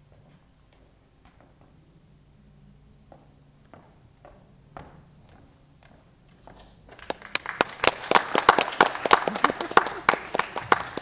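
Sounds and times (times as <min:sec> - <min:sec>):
audience applause: 0:06.9 - 0:11.0
loud claps close by: 0:06.9 - 0:11.0.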